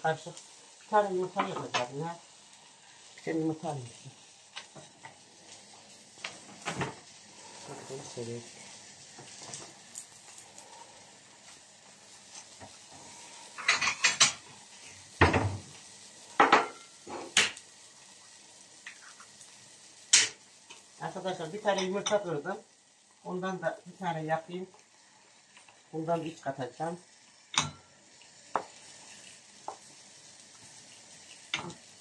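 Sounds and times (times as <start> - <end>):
frying pan sizzle: 0.0 - 32.0
dishes and utensils clattering: 13.6 - 14.4.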